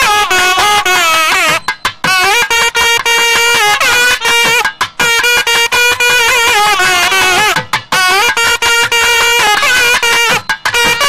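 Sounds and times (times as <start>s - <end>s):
double-reed pipes playing melody: 0.0s - 11.0s
drum strokes: 0.0s - 11.0s.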